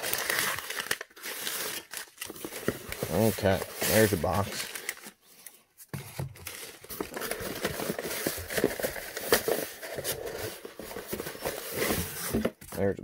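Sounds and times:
newspaper rustling and crinkling: 0.0s - 13.0s
cardboard knocks and scrapes: 5.9s - 12.8s.

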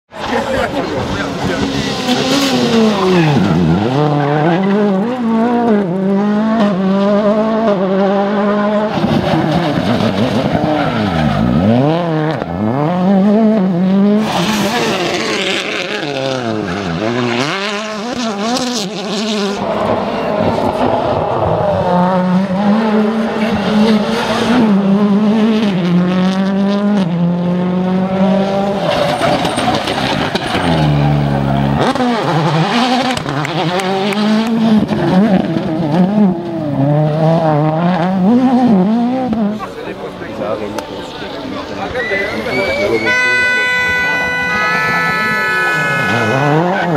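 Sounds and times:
rally car engines revving: 0.1s - 46.9s
tyre and road noise: 0.1s - 46.9s.

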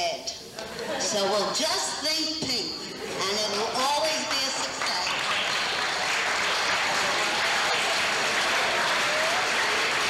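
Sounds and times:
audience applauding: 3.5s - 10.0s.

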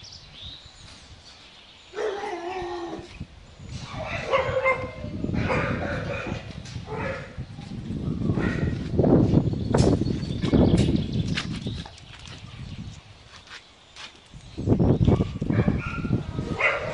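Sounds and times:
dogs barking and whining: 1.9s - 3.1s, 3.8s - 8.8s, 15.1s - 16.9s.

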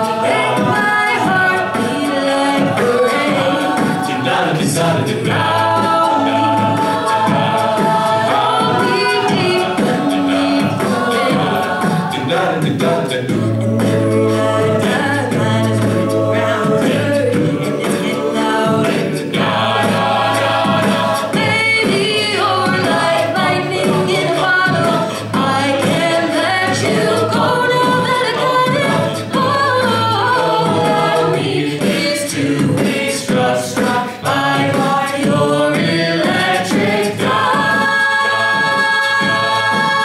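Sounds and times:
backing voices singing: 0.0s - 40.0s
beatboxed percussion: 0.0s - 40.0s.

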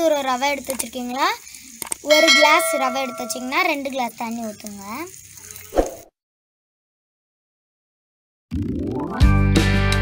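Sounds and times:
child speaking: 0.0s - 1.4s
bell-like notification chime: 2.1s - 3.7s.

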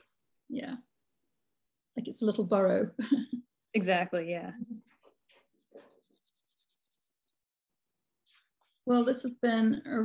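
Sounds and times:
pencil scratching on paper: 4.8s - 7.4s.

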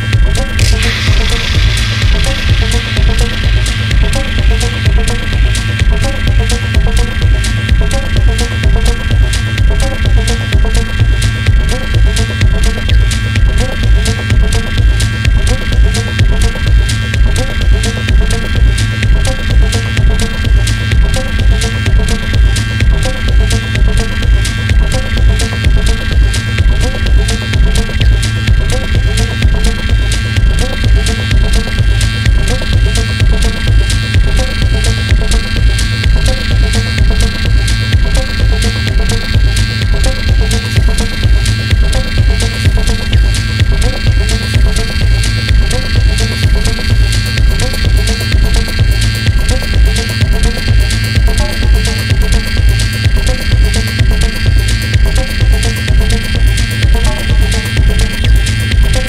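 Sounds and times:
droning synthesizer tone: 0.0s - 59.0s
pulsing kick drum: 0.0s - 59.0s
rhythmic short blips: 0.0s - 59.0s.

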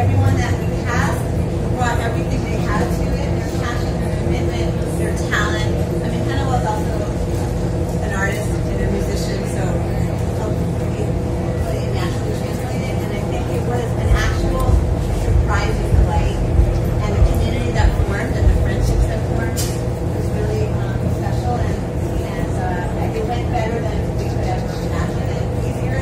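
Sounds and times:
machine hum: 0.0s - 26.0s
woman speaking into a microphone: 0.0s - 26.0s
low thumps and rumbles: 13.8s - 20.2s.

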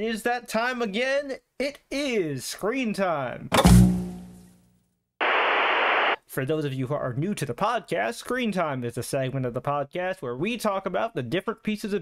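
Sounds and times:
television static hiss: 5.2s - 6.2s.

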